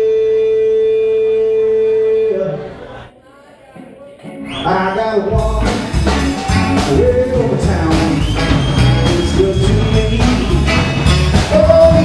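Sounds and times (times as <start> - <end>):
band holding long high note: 4.7 - 12.0.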